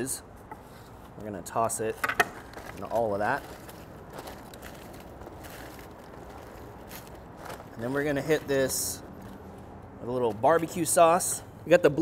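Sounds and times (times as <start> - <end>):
aluminium foil rustling: 2.3 - 9.4.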